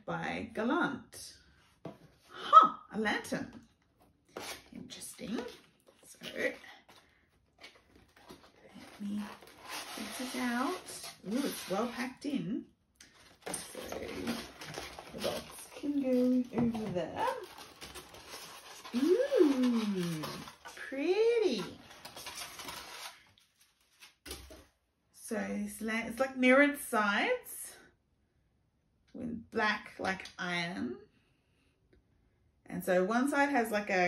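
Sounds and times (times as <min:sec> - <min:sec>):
cardboard rustle: 0:04.3 - 0:12.1, 0:13.1 - 0:24.6.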